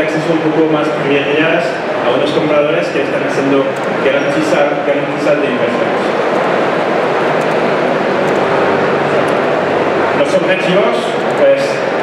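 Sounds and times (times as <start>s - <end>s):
exhibition hall din: 0.0s - 12.0s.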